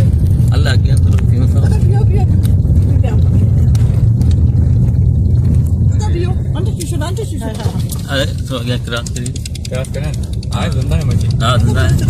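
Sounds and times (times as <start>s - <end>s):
car driving on dirt road: 0.0s - 12.0s.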